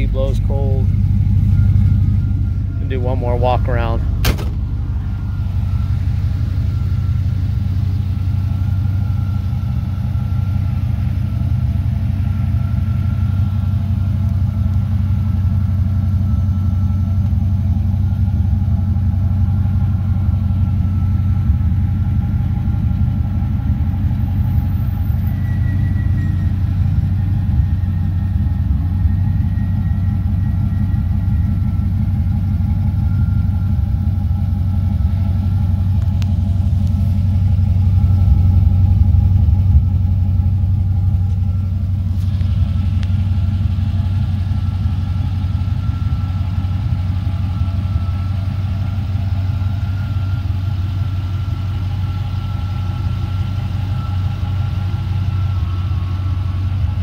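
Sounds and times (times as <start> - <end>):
engine idling: 0.0 - 57.0.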